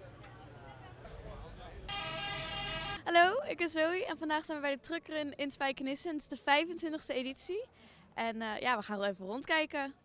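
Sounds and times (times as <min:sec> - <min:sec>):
truck air horn blast: 0:01.9 - 0:03.1.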